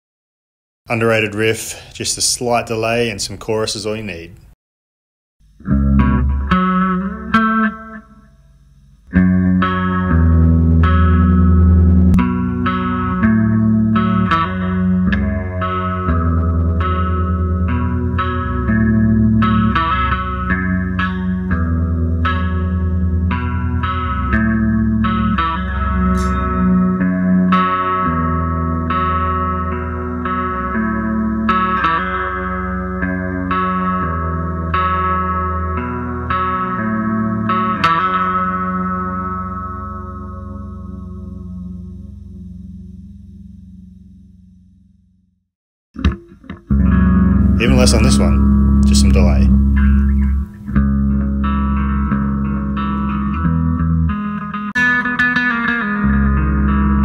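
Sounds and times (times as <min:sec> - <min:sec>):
clean electric guitar riff: 0:05.5 - 0:45.3, 0:46.0 - 0:57.0.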